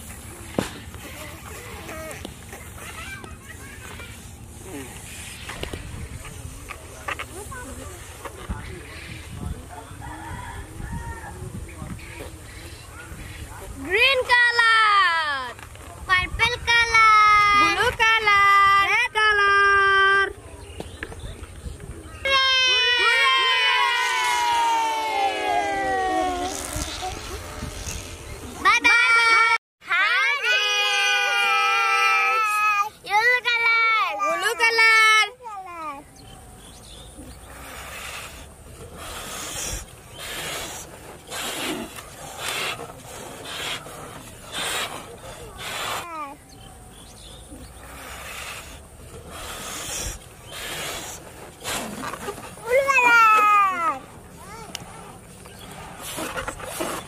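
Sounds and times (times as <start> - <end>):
rocket balloons squealing: 22.3 - 29.4
breaths blown into balloons: 37.4 - 46.3, 47.7 - 52.7.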